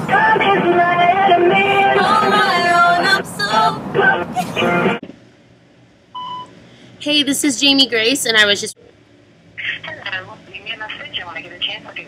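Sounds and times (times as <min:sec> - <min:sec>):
short telephone beep: 0:06.2 - 0:06.5
woman speaking: 0:07.0 - 0:08.8, 0:09.6 - 0:12.0.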